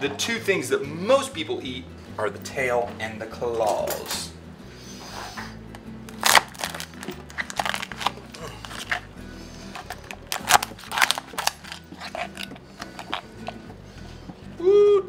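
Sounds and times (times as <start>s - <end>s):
background music: 0.0s - 15.0s
lobster shell cracking: 6.1s - 13.7s.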